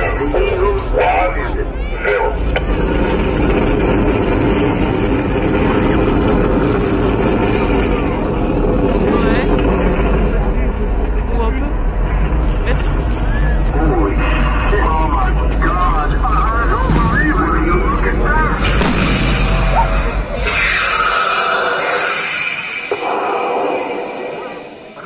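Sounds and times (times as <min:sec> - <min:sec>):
low rumble: 0:00.0 - 0:25.0
murmur of crowd voices: 0:00.0 - 0:25.0.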